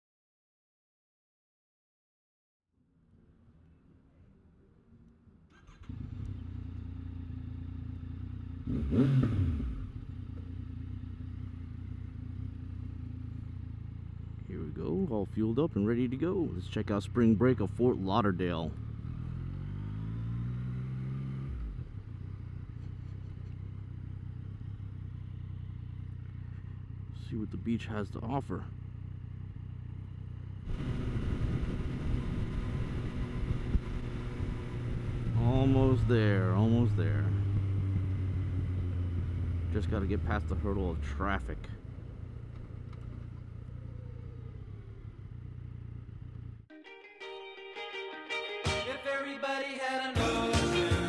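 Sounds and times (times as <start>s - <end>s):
road and wind noise: 4.5s - 46.7s
motorcycle engine revving: 5.5s - 46.7s
music: 46.7s - 51.0s.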